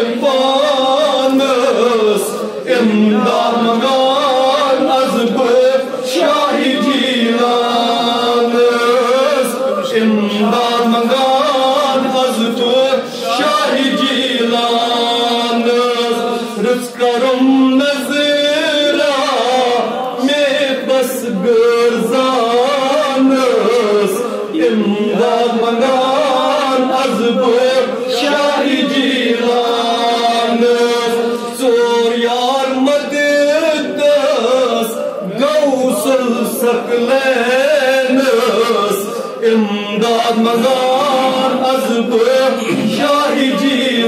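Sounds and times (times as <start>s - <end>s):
man chanting: 0.0s - 44.0s.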